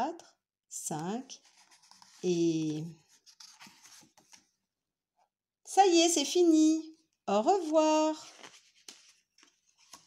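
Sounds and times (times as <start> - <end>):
book page turning: 1.4 - 4.6, 8.1 - 10.0.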